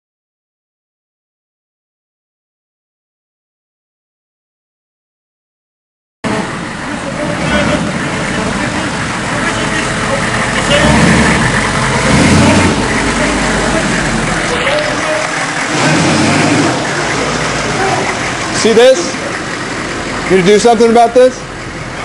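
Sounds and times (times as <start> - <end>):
van engine running: 6.2 - 22.0.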